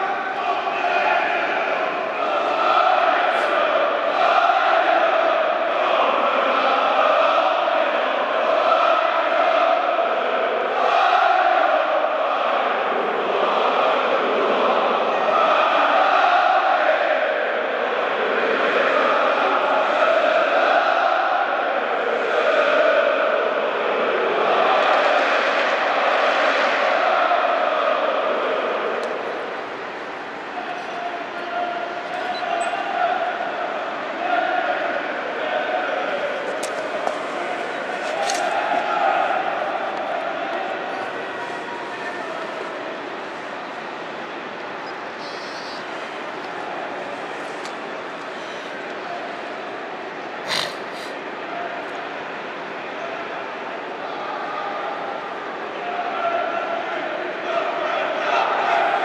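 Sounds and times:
stadium crowd chanting: 0:00.0 - 0:59.0.

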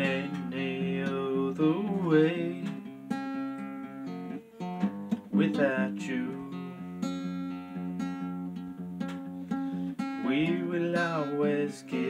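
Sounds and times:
acoustic guitar chords strummed: 0:00.0 - 0:12.0.

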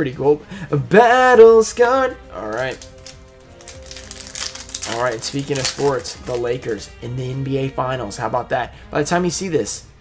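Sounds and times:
quiet background music: 0:00.0 - 0:10.0
foil wrapper tearing and crinkling: 0:02.4 - 0:06.8.

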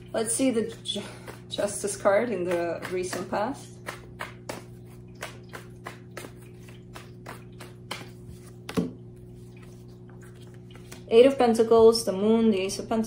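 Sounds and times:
cards being shuffled: 0:02.5 - 0:11.1.

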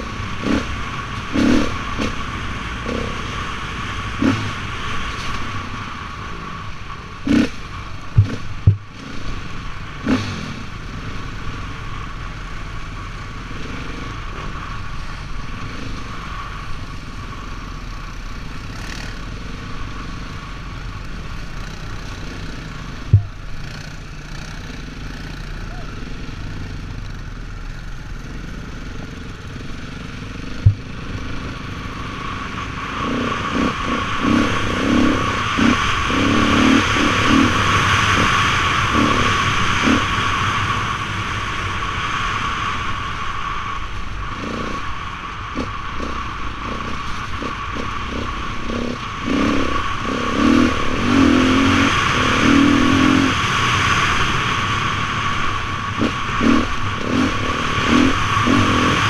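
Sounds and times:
atv engine running: 0:00.0 - 0:59.0.

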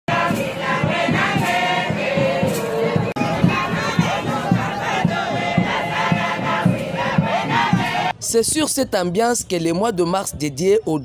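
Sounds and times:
women singing in chorus: 0:00.1 - 0:08.1.

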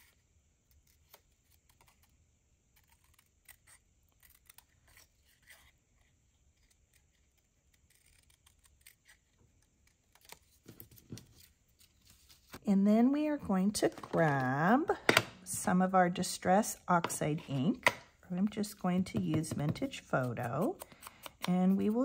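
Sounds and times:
scissors snipping paper: 0:02.7 - 0:05.7, 0:06.5 - 0:11.0, 0:17.0 - 0:22.0.

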